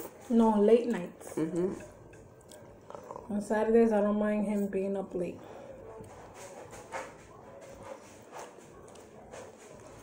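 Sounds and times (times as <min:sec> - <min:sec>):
chewing: 0:01.6 - 0:03.3, 0:07.7 - 0:10.0.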